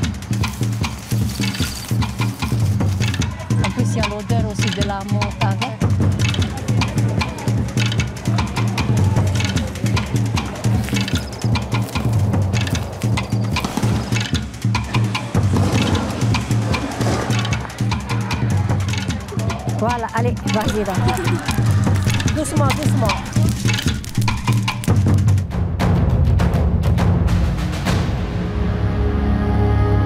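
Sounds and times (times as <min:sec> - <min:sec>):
music with bass and percussion: 0:00.0 - 0:30.0
person's voice: 0:19.8 - 0:23.8.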